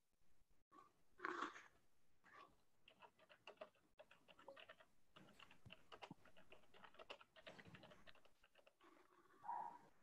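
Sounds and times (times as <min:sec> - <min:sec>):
keyboard typing: 0:02.9 - 0:08.7.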